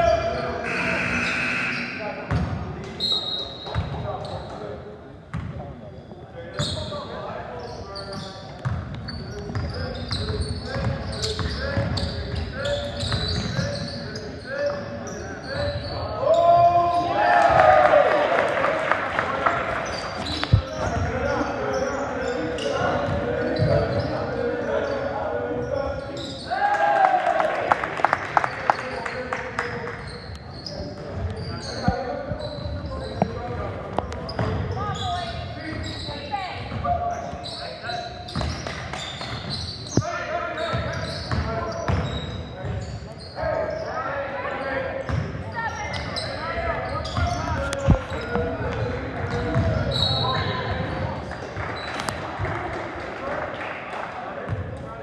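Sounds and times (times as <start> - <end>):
voices calling out echoing: 0.0 - 55.0.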